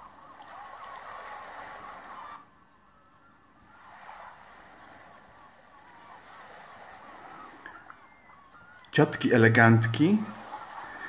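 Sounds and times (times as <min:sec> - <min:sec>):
surf washing: 0:00.0 - 0:02.6, 0:03.6 - 0:11.0.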